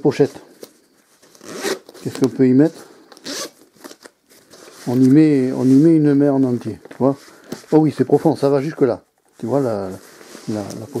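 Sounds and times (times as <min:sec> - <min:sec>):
zipper being pulled: 0:01.4 - 0:01.9.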